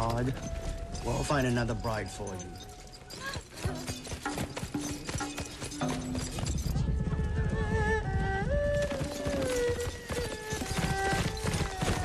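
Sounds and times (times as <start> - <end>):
hooves clip-clopping: 0.0 - 12.0.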